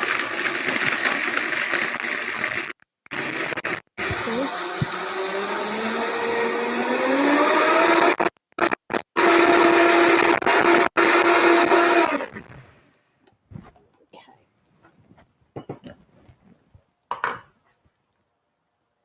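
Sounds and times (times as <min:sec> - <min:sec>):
blender crushing ice: 0:00.0 - 0:12.5.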